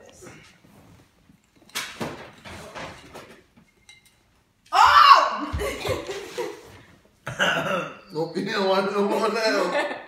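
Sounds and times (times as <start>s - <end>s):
glass handling knocks and rustles: 1.5s - 4.3s.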